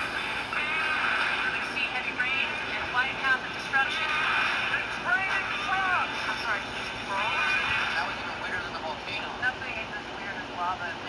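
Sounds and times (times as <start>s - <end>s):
high-pitched television voices: 0.0s - 11.0s.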